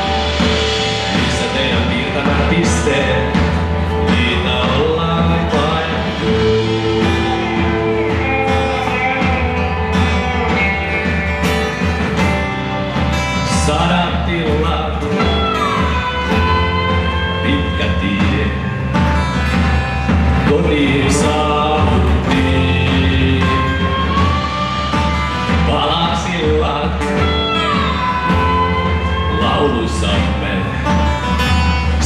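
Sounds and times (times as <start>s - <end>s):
person singing: 0.0s - 11.7s, 13.1s - 18.9s, 20.4s - 31.2s
pop-rock band playing live: 0.0s - 32.0s.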